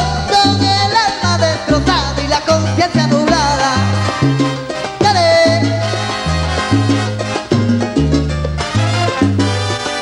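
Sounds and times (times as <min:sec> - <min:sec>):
repeating bass line: 0:00.0 - 0:10.0
salsa band playing: 0:00.0 - 0:10.0.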